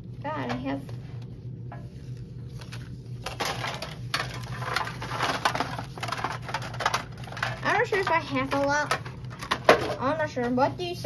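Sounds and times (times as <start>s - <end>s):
cards rattling in metal tin: 2.6s - 10.1s.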